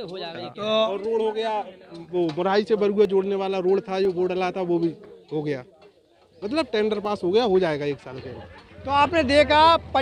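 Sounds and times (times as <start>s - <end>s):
man speaking: 0.0s - 1.7s.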